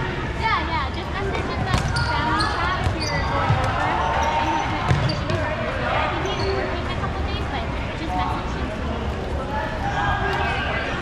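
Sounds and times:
players calling out: 0:01.3 - 0:07.1
balls thudding: 0:01.6 - 0:02.2, 0:04.8 - 0:05.4.

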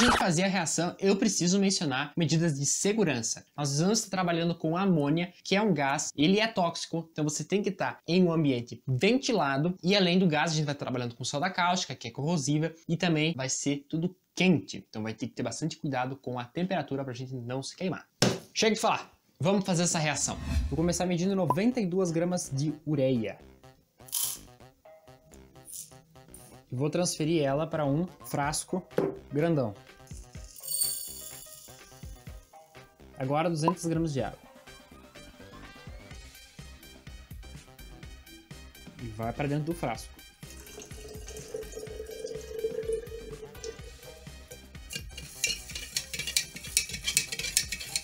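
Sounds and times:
background music: 0:19.7 - 0:48.0
water pouring into a glass jar: 0:40.4 - 0:44.7
metal spoon stirring in glass jar: 0:40.6 - 0:48.0.

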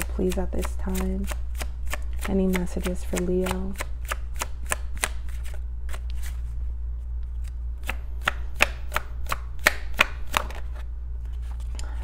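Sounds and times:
cards being shuffled: 0:00.6 - 0:06.6, 0:07.2 - 0:12.0.

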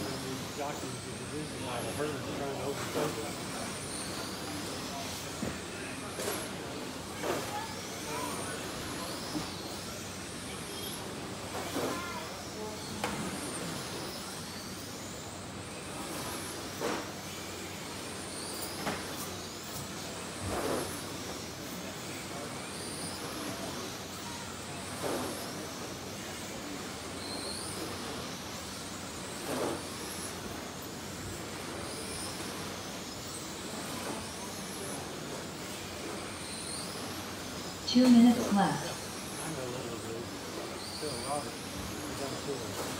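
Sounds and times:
electric motors whining: 0:00.0 - 0:42.9.

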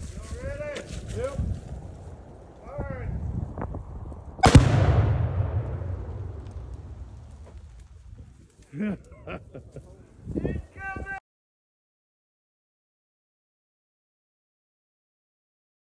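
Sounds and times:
low rumble: 0:01.3 - 0:08.6
explosion blast: 0:04.4 - 0:07.7.

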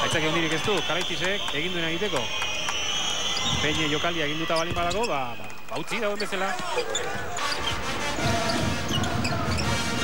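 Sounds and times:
crowd noise: 0:00.0 - 0:10.0
sneakers squeaking: 0:02.9 - 0:10.0.

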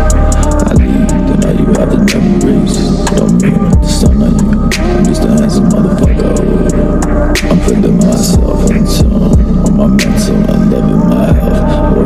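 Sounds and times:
deep bass notes sliding down: 0:00.0 - 0:12.0
sustained low drone: 0:00.0 - 0:12.0.

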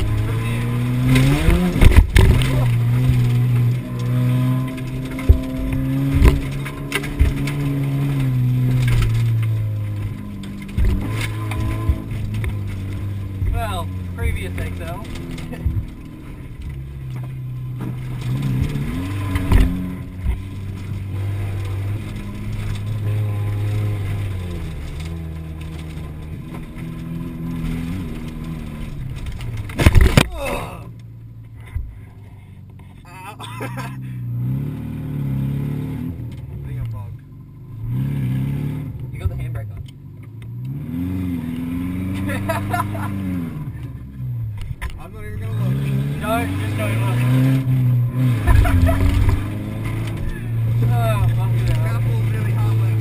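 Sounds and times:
car engine revving: 0:00.0 - 0:53.0.

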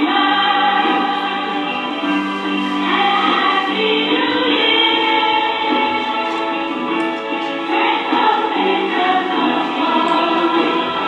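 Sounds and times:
choir singing with music: 0:00.0 - 0:11.0.

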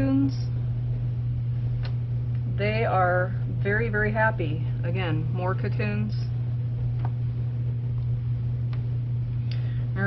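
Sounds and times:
motor hum: 0:00.0 - 0:10.0.

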